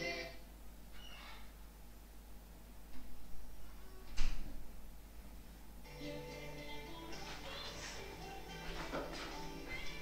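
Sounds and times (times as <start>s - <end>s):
low steady hum: 0.0s - 10.0s
faint music of held notes: 5.8s - 10.0s.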